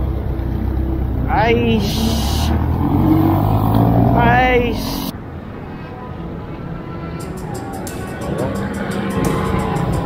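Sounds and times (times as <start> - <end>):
vehicle engine droning: 0.0 - 10.0.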